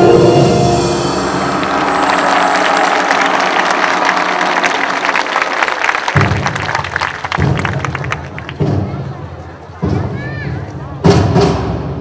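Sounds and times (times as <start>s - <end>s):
music: 0.0s - 12.0s
audience applauding: 1.1s - 9.4s.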